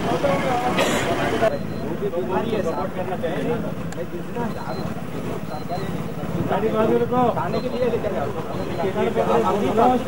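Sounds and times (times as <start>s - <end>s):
people talking indistinctly: 0.0s - 10.0s
street and traffic noise: 0.0s - 10.0s.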